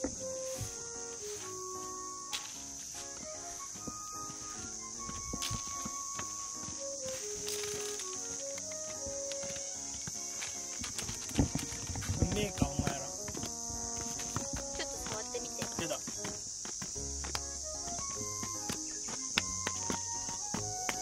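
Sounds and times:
background music: 0:00.0 - 0:21.0
ostriches pecking feed trough: 0:08.0 - 0:21.0.

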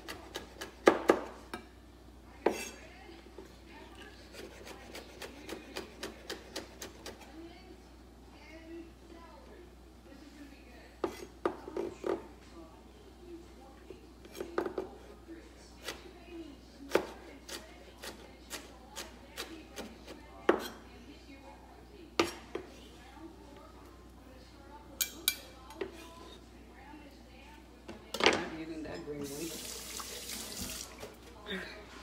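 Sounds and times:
knife chopping on wooden board: 0:04.4 - 0:07.2.

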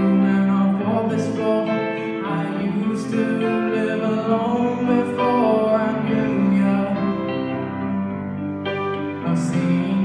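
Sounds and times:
young man singing slow song: 0:00.0 - 0:08.1, 0:09.0 - 0:10.0
instrumental accompaniment: 0:00.0 - 0:10.0.

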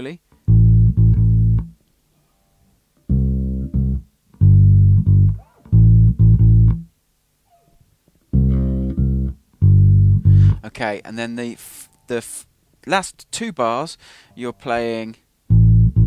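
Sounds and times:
electric bass guitar notes: 0:00.4 - 0:01.8, 0:03.0 - 0:06.9, 0:08.3 - 0:10.7, 0:15.5 - 0:16.0.

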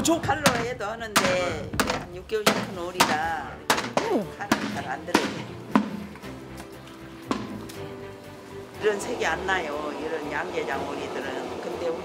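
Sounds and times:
background music: 0:00.0 - 0:12.0
hatchet chopping on cutting board: 0:00.4 - 0:06.0.

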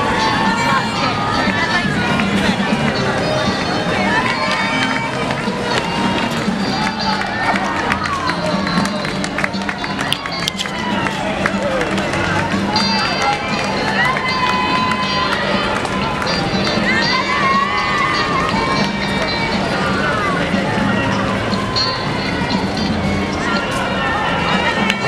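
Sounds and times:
runners' footsteps on pavement: 0:00.0 - 0:19.8
background music: 0:00.0 - 0:25.0
spectators chattering: 0:00.0 - 0:25.0.

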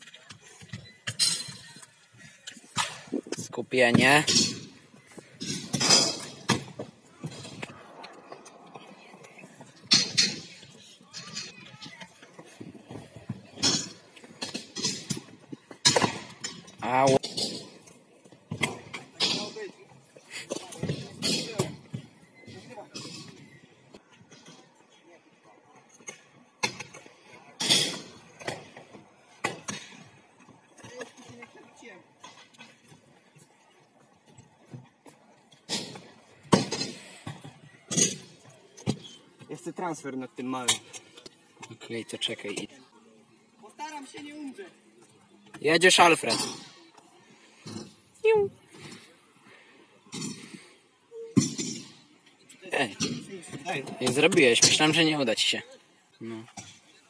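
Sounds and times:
scooters knocking and clanking: 0:00.0 - 0:24.6, 0:25.9 - 0:33.4, 0:34.0 - 0:39.6, 0:51.2 - 0:55.5.

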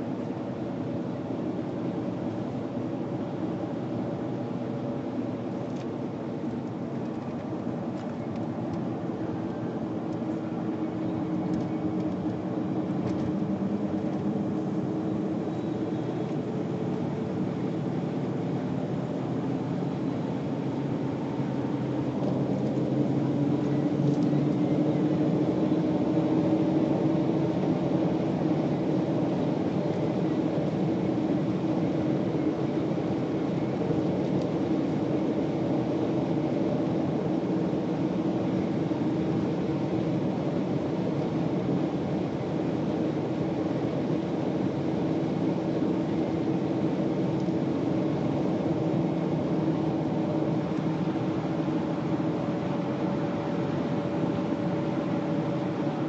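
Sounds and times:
car engine drone: 0:00.0 - 0:56.0
road and tyre noise: 0:00.0 - 0:56.0.

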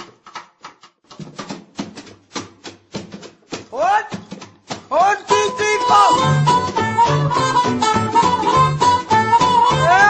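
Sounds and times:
sharp percussive taps: 0:00.0 - 0:10.0
band playing: 0:05.0 - 0:10.0.

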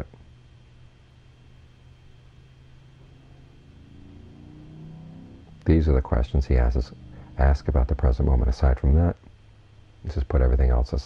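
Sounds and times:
low motor drone: 0:00.0 - 0:11.0
steady low hum: 0:00.0 - 0:11.0.

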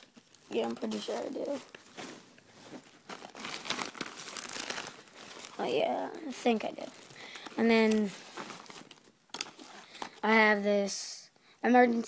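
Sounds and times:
emergency blankets crinkling: 0:00.0 - 0:10.2.

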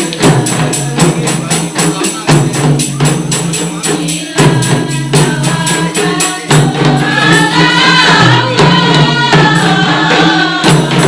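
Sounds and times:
frame drum strokes: 0:00.0 - 0:11.0
group of voices singing: 0:00.0 - 0:11.0.

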